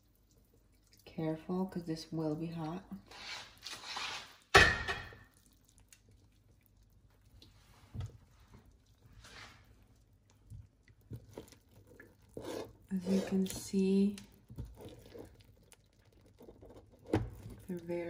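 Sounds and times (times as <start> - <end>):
faint knocks and rustles: 7.4 - 13.8.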